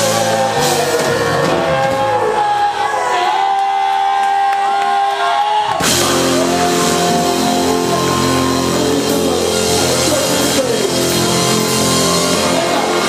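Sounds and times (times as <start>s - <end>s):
live zydeco rock band: 0.0s - 2.9s, 5.7s - 13.0s
cymbal crash: 5.8s - 13.0s.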